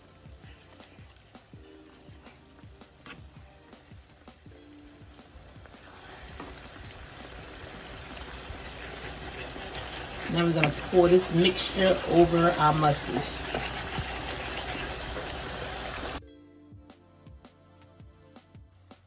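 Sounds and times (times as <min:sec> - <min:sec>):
faint background music: 0:00.0 - 0:19.0
spoon stirring sauce in pan: 0:00.2 - 0:04.5, 0:05.1 - 0:16.2.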